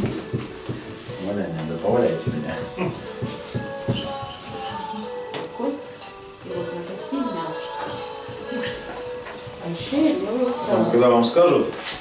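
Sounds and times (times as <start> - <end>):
background music with steady beat: 0.0 - 12.0
indistinct voices: 1.1 - 12.0.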